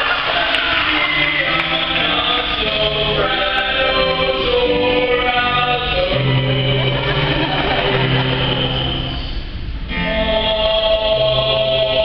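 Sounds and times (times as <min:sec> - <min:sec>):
breathy vocal sound of singers: 0:01.2 - 0:12.0.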